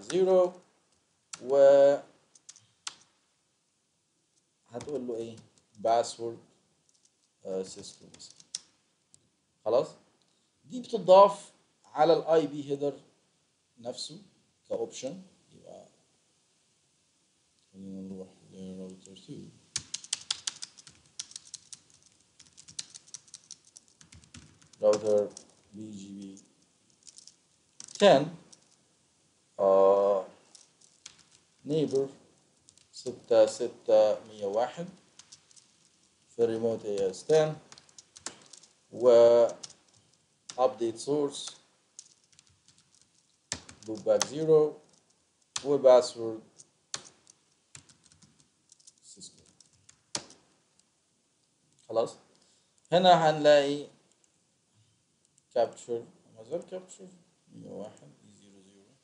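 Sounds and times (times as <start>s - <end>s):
typing on computer keyboard: 19.7s - 25.5s, 27.0s - 28.6s, 37.0s - 38.7s, 39.4s - 39.8s, 41.5s - 44.3s, 46.9s - 50.4s.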